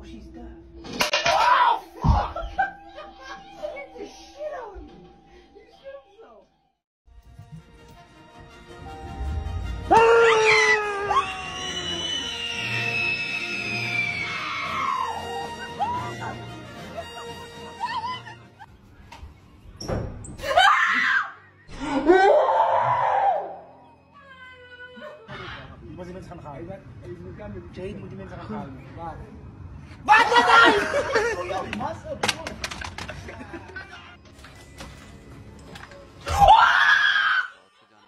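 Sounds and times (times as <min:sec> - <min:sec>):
woman screaming: 0:09.9 - 0:16.4, 0:20.4 - 0:23.6, 0:36.3 - 0:37.6.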